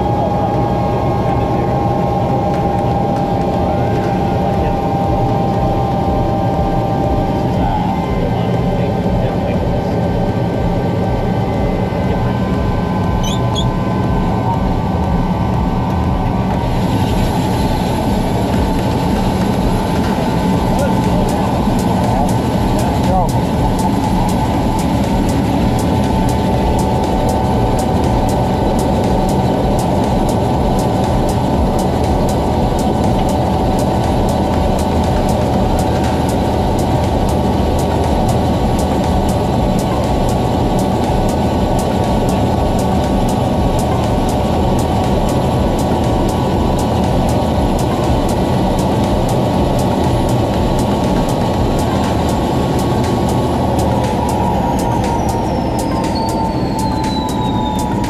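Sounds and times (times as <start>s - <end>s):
helicopter engine and rotor: 0.0s - 58.0s.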